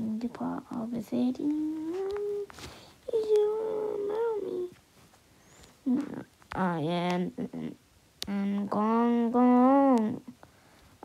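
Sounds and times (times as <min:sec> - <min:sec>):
person singing long vowel notes: 0:03.1 - 0:04.7, 0:05.9 - 0:10.3.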